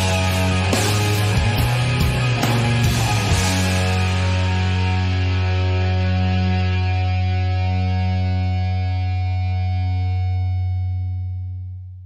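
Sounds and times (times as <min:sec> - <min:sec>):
distorted electric guitar chord: 0:00.0 - 0:11.6.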